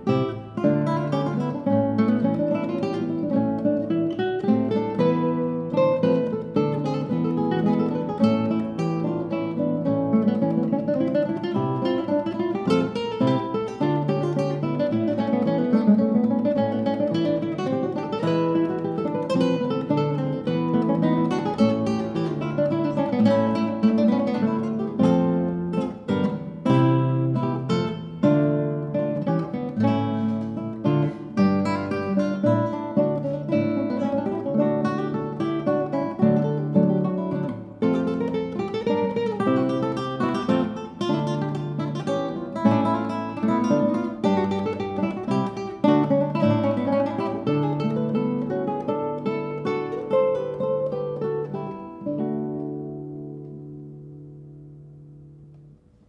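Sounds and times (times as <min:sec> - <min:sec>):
classical guitar duet: 0:00.0 - 0:56.0.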